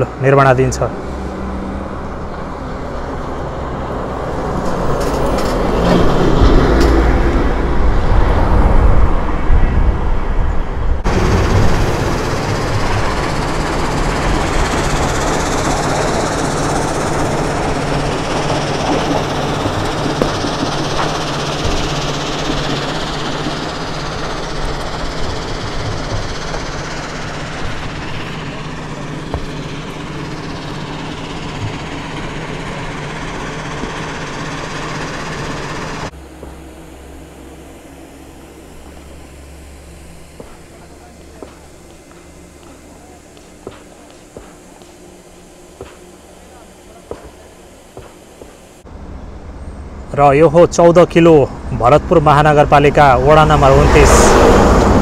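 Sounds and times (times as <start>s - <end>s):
steady rumbling noise: 0.0s - 55.0s
bus driving past: 0.8s - 47.6s, 53.2s - 55.0s.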